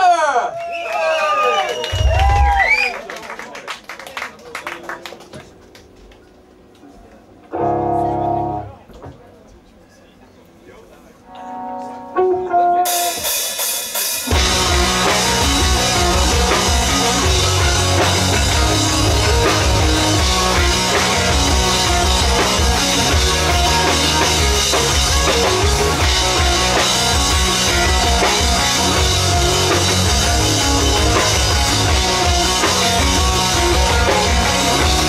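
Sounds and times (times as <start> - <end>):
crowd cheering: 0.0 - 5.6
drum hits: 1.9 - 2.8
electric guitar strummed and picked: 11.4 - 35.0
rock band playing loudly: 12.2 - 35.0.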